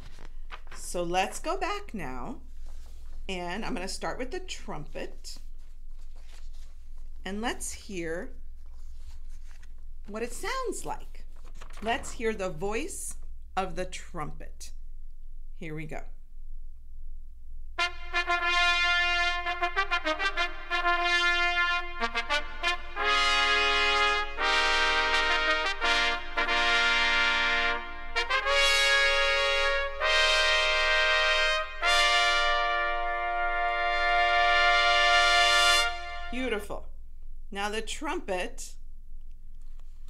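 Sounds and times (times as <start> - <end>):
trumpet quick short notes: 17.8 - 36.4
trumpets holding chords: 17.8 - 36.7.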